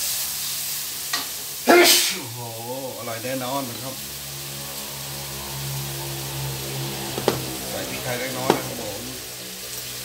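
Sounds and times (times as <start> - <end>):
food sizzling in oil: 0.0 - 10.0
low hum: 4.0 - 9.2.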